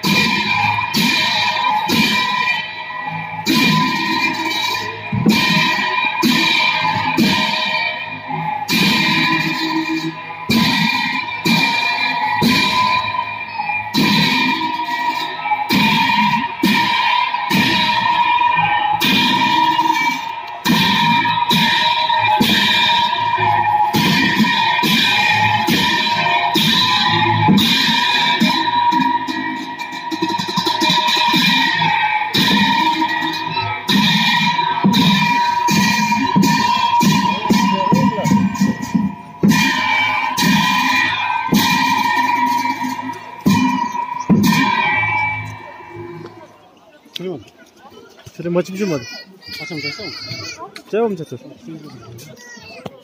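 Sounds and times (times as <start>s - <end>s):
low drumming: 0.0s - 46.5s
cymbals clashing: 0.0s - 46.6s.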